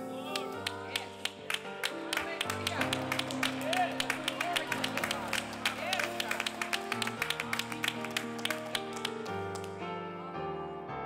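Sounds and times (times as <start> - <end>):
gospel keyboard chords: 0.0 - 11.0.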